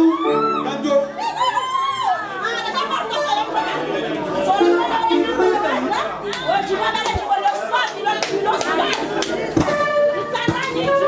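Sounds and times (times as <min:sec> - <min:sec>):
voices talking over one another: 0:00.7 - 0:11.0
live band music: 0:09.5 - 0:11.0.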